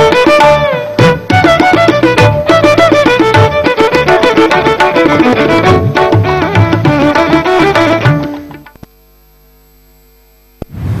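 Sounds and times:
low electrical hum: 0:00.0 - 0:11.0
louder sound: 0:10.6 - 0:11.0.

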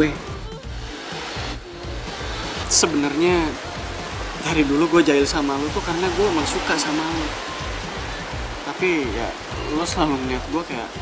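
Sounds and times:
soft background music: 0:00.0 - 0:11.0
steady hiss: 0:00.0 - 0:11.0.

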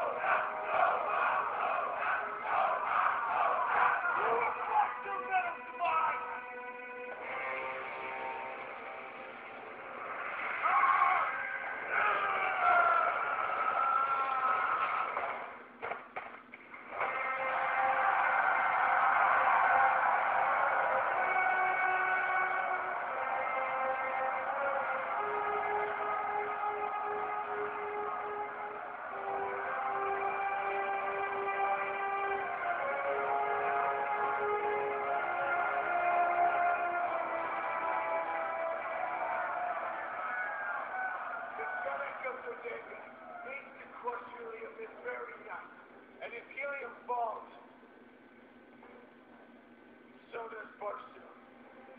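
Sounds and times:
film score music: 0:00.0 - 0:13.4, 0:16.8 - 0:41.6.

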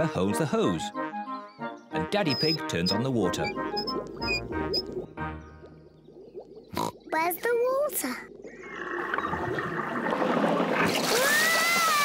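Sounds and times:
water gurgling through hose: 0:06.1 - 0:12.0.

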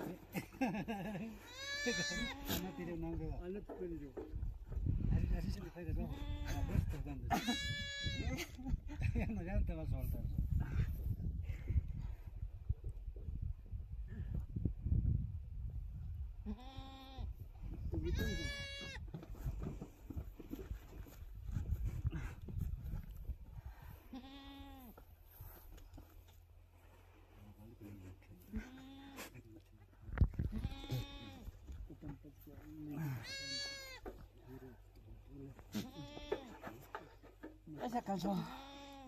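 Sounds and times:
goats bleating: 0:01.4 - 0:03.2, 0:06.0 - 0:08.6, 0:16.5 - 0:17.2, 0:18.0 - 0:19.1, 0:24.0 - 0:25.0, 0:28.5 - 0:29.4, 0:30.5 - 0:31.6, 0:33.0 - 0:34.2, 0:35.7 - 0:36.7, 0:38.4 - 0:39.0
wind rumbling on microphone: 0:04.3 - 0:24.1, 0:30.0 - 0:31.9.

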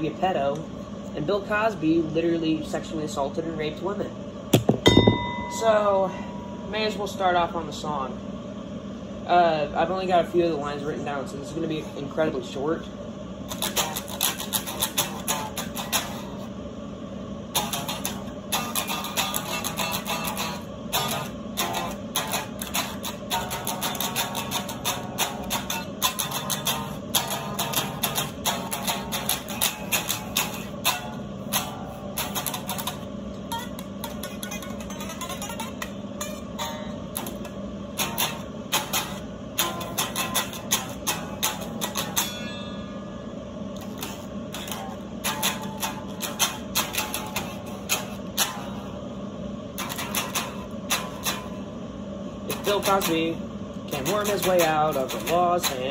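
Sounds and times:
acoustic guitar strumming: 0:04.6 - 0:07.2, 0:13.5 - 0:16.5, 0:17.5 - 0:49.0, 0:49.7 - 0:51.7, 0:52.5 - 0:53.3, 0:53.9 - 0:55.9.

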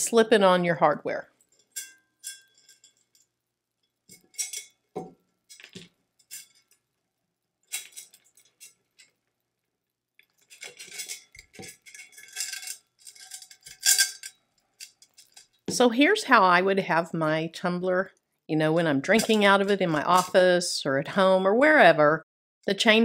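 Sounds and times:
metal chain clinking: 0:01.4 - 0:03.3, 0:04.1 - 0:04.8, 0:07.7 - 0:09.1, 0:10.4 - 0:15.6.

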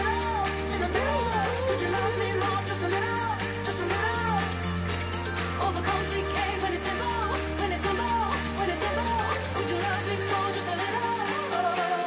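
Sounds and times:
live pop band playing: 0:00.0 - 0:12.0
person singing: 0:00.0 - 0:12.0.

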